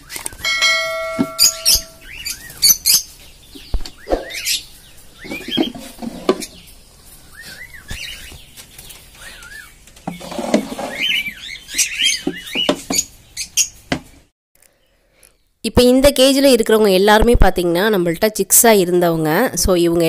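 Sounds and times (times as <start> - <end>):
pet birds chirping: 0.0 - 9.9, 10.7 - 13.9
ringing chime: 0.4 - 2.4.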